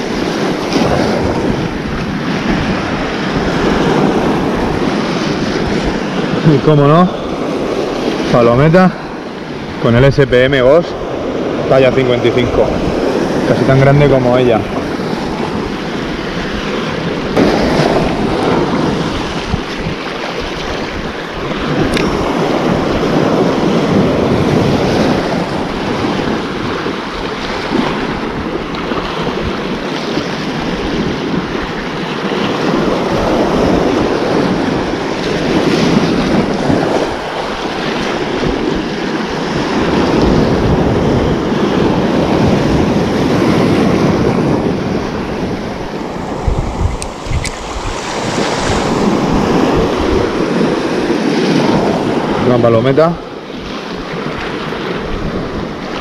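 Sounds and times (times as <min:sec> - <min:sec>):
sea waves breaking on shore: 0:00.0 - 0:56.0
wind buffeting microphone: 0:00.0 - 0:56.0.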